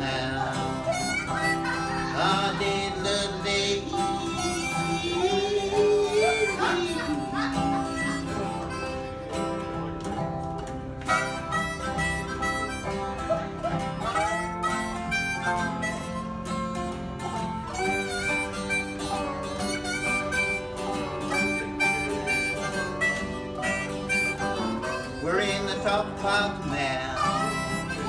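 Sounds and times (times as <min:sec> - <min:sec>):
harmonica with bending notes: 0:00.0 - 0:28.0
resonator guitar: 0:00.0 - 0:28.0
strummed acoustic guitar: 0:00.0 - 0:28.0.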